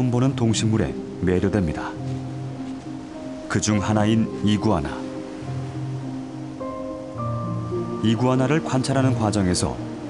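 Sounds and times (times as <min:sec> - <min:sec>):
soft music of sustained notes: 0:00.0 - 0:10.0.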